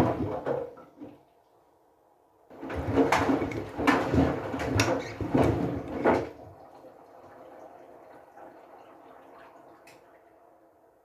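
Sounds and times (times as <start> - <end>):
washing machine drum tumbling: 0.0 - 0.8, 2.5 - 6.4
water sloshing: 2.5 - 7.8.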